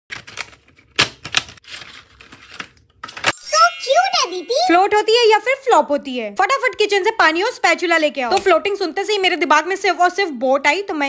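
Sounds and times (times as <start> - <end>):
paper rustle: 0.1 - 3.3.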